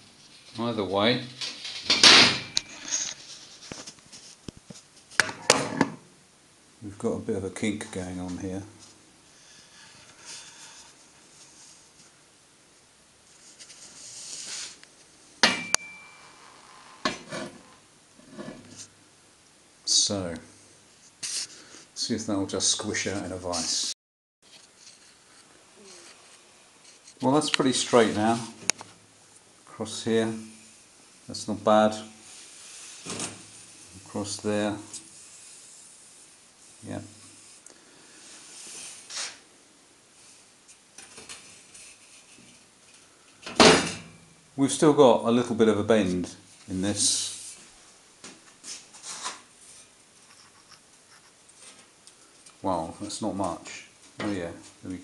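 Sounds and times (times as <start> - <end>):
light metal scraping: 0.0 - 4.4, 15.6 - 18.9
metal parts clanking: 1.4 - 3.1
metallic clank: 15.4 - 16.2.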